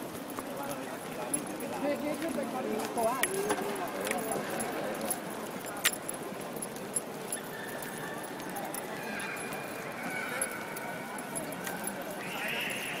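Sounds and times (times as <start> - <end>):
people talking: 0.4 - 6.7, 8.1 - 13.0.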